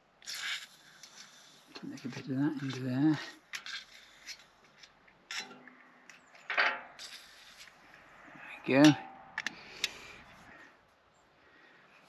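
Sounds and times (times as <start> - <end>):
small metallic clicks and rubs: 0.2 - 8.0, 8.8 - 10.4.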